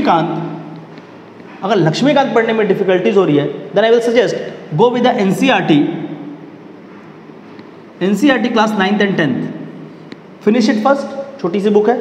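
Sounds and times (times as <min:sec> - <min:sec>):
person speaking: 0:00.0 - 0:06.4, 0:07.9 - 0:12.0
room noise hiss: 0:00.0 - 0:12.0.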